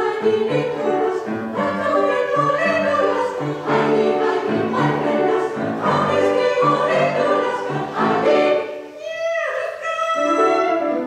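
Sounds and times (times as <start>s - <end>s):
piano accompaniment: 0.0s - 9.0s, 10.2s - 11.0s
women's choir singing: 0.0s - 9.0s.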